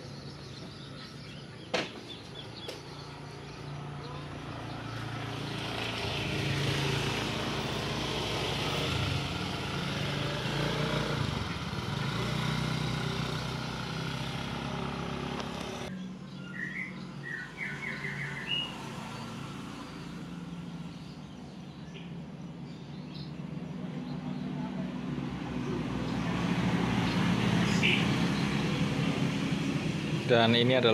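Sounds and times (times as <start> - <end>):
bird chirping: 0.0 - 6.2, 15.6 - 24.9, 26.9 - 29.3
vehicle engine running: 2.6 - 16.0.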